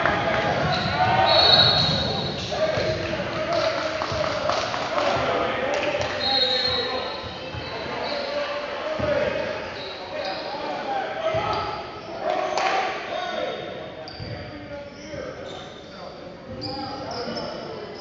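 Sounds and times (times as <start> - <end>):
echoing voices: 0.0 - 18.0
sneaker squeaks: 0.6 - 2.8, 6.0 - 18.0.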